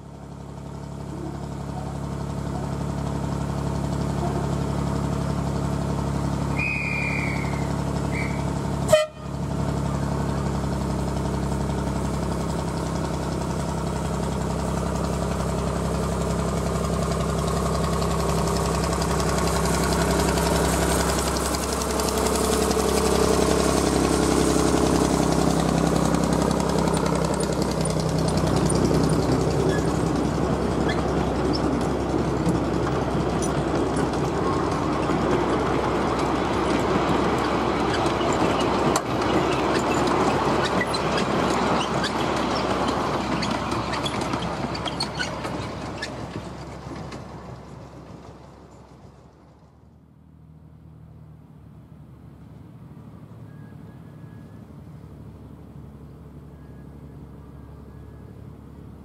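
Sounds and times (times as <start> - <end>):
miniature locomotive running: 0.0 - 49.8
train wheel noise: 0.0 - 50.0
short high toots: 6.6 - 9.2.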